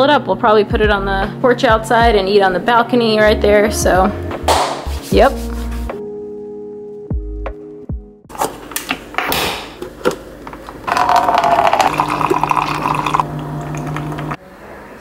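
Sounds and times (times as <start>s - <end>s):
hot coffee pouring: 10.8s - 14.4s.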